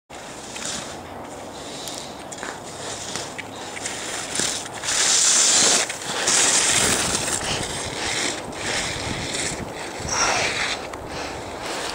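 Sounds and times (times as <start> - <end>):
skis scraping on snow: 0.2 - 11.9
wind on microphone: 3.9 - 11.9.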